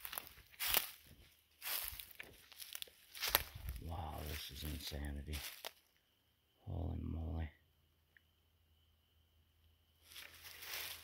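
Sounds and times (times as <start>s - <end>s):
rustling through brush: 0.0s - 5.9s, 10.0s - 11.0s.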